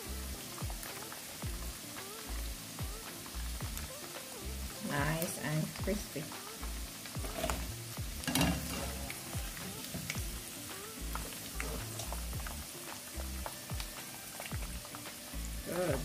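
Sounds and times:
chicken frying in hot oil: 0.0 - 16.0
strainer moving through oil: 7.1 - 10.2.

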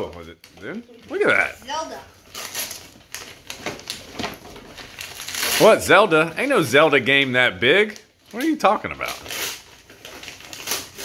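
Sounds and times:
wrapping paper ripping: 1.1 - 11.0.

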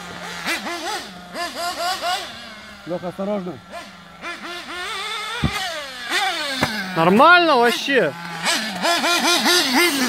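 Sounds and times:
steady low engine note: 0.0 - 9.0
small engines revving: 0.0 - 10.0.

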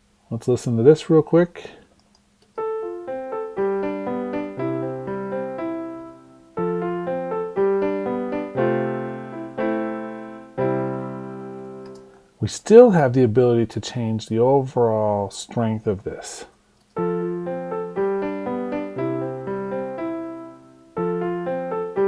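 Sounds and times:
piano melody with chords: 2.6 - 12.2, 17.0 - 22.0.

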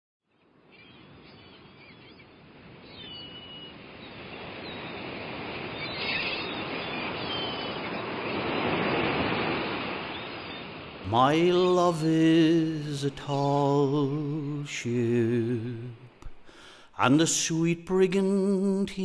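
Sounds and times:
sea waves washing: 3.7 - 19.0
short bird calls: 5.7 - 9.0.

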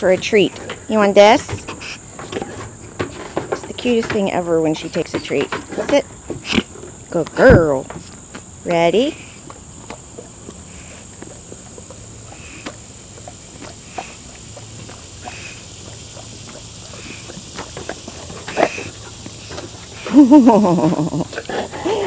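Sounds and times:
dog chewing and smacking lips: 0.0 - 22.0
high insect buzz: 0.4 - 22.0
person's voice: 7.1 - 7.9.

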